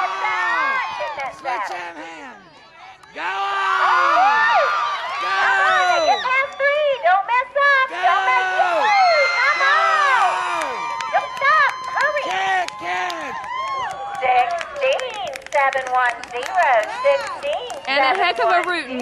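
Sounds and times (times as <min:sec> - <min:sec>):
high voices shouting and whooping: 0:00.0 - 0:15.4, 0:16.2 - 0:19.0
spectators yelling and cheering: 0:00.0 - 0:15.4, 0:16.0 - 0:19.0.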